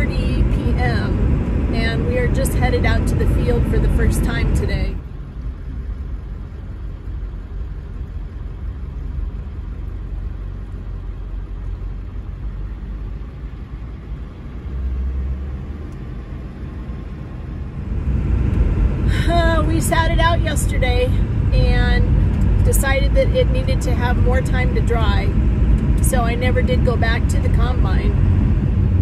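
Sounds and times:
vehicle rumble inside cab: 0:00.0 - 0:29.0.

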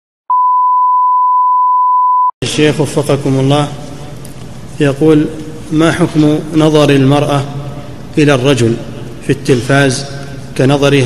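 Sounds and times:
steady test-tone beep: 0:00.3 - 0:02.3.

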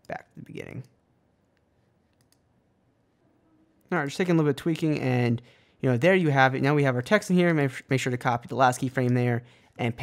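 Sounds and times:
computer mouse clicks: 0:00.8 - 0:02.5.

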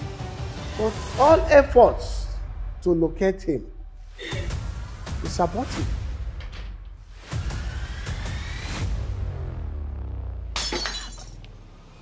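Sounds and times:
dramatic film music: 0:00.0 - 0:10.6
glass crashing on stone floor: 0:10.6 - 0:11.4.

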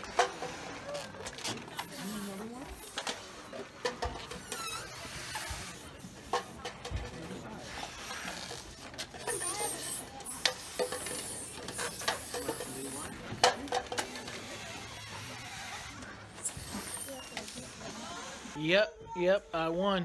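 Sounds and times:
air hissing from balloons: 0:00.0 - 0:06.6, 0:07.2 - 0:18.6.

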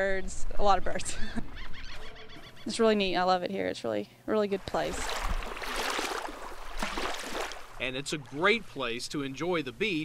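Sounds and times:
small waves washing on sand: 0:04.7 - 0:08.6.

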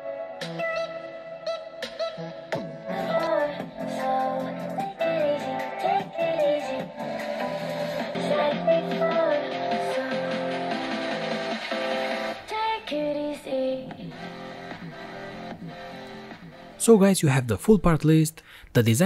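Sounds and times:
pop music with guitar: 0:00.0 - 0:16.8.

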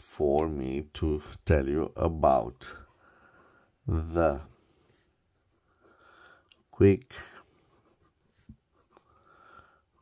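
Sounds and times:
pen scratching on paper: 0:04.9 - 0:10.0.

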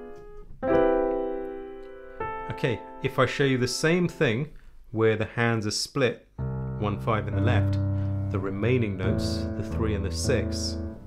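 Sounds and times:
piano chords: 0:00.0 - 0:04.5, 0:06.4 - 0:11.0.

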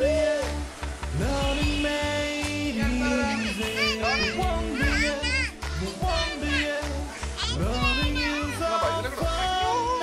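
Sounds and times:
background music with low beat: 0:00.0 - 0:10.0
children calling and chattering: 0:02.9 - 0:10.0.

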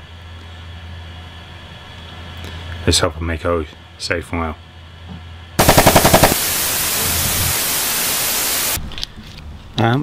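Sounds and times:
fast stuttering rattle: 0:05.6 - 0:07.3
white noise static hiss: 0:05.6 - 0:08.8.

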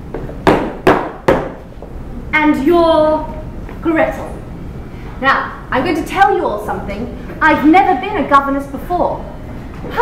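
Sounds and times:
sharp knocks: 0:00.1 - 0:01.6.

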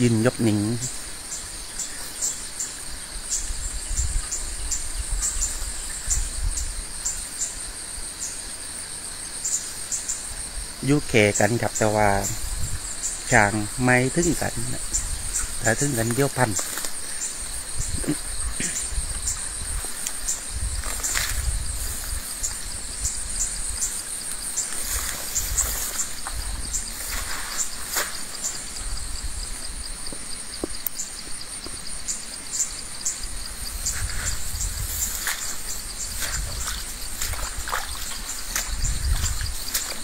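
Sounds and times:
insects chirring: 0:00.0 - 0:40.0
vegetation snapping and rustling: 0:16.0 - 0:17.0, 0:20.8 - 0:21.5, 0:27.0 - 0:28.2, 0:35.0 - 0:35.6, 0:36.2 - 0:40.0.

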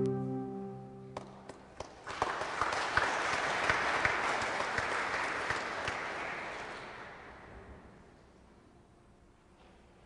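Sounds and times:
audience applause: 0:02.0 - 0:07.2.

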